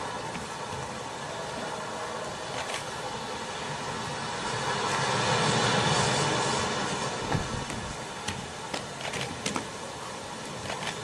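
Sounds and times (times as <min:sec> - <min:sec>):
broad rushing noise: 0:00.0 - 0:11.0.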